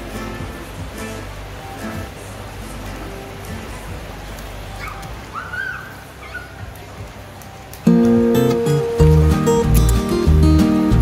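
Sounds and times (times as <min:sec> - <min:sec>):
steady rushing noise: 0:00.0 - 0:11.0
loud background music: 0:07.9 - 0:11.0.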